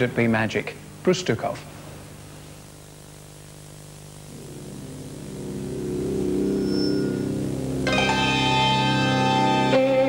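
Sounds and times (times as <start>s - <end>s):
low steady hum: 0.0s - 10.0s
sustained synthesizer chord: 4.3s - 10.0s.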